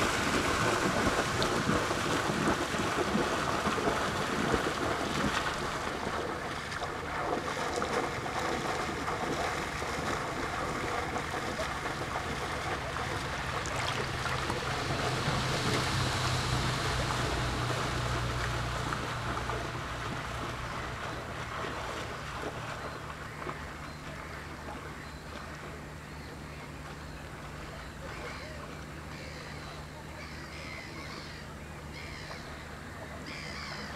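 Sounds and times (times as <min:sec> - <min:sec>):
waves lapping on rocks: 0:00.0 - 0:25.8
motorboat engine droning: 0:00.0 - 0:33.9.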